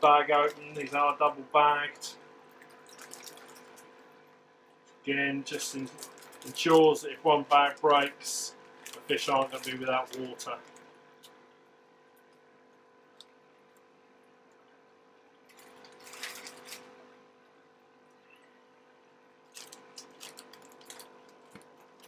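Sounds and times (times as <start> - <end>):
faint steady hum: 0.0 - 22.0
plastic bags crinkling: 2.6 - 4.0, 5.5 - 11.4, 15.5 - 17.2, 19.5 - 22.0.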